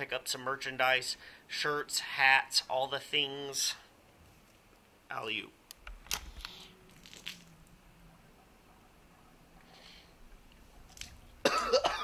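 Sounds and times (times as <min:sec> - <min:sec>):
man coughing harshly: 0:11.4 - 0:12.0.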